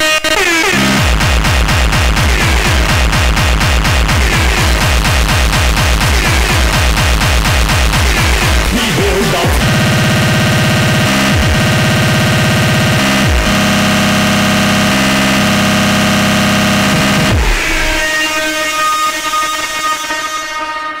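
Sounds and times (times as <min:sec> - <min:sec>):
sustained distorted synth tones: 0:00.0 - 0:18.2
fast distorted kick drum: 0:00.9 - 0:18.1.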